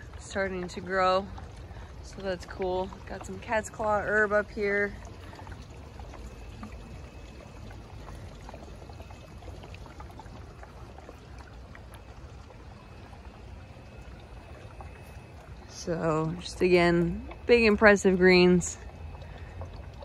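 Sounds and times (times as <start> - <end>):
water trickling and pouring: 0.0 - 20.0.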